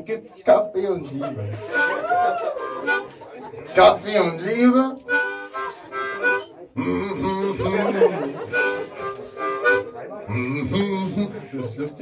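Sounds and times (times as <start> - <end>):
harmonica held chords: 1.6 - 3.1, 5.1 - 7.8, 8.5 - 10.6.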